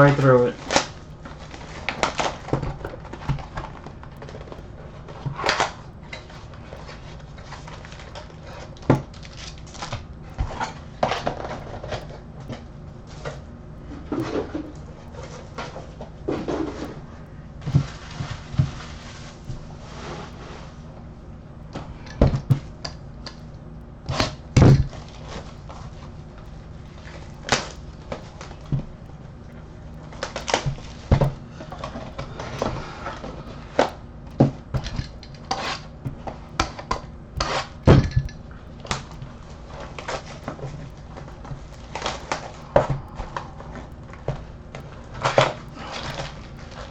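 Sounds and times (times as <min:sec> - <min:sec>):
plastic wrapping rustling and tearing: 0:00.0 - 0:13.4.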